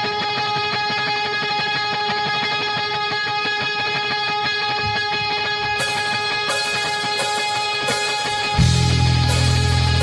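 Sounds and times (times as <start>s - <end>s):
electric guitar picking: 0.0s - 10.0s
rock band playing live: 0.0s - 10.0s.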